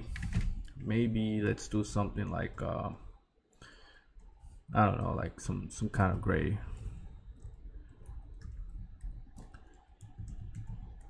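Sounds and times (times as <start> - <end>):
computer keyboard clicks: 7.4 - 11.0.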